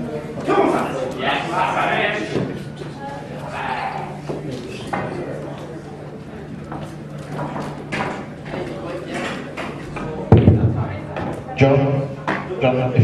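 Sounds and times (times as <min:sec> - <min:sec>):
low voices: 0:00.0 - 0:13.0.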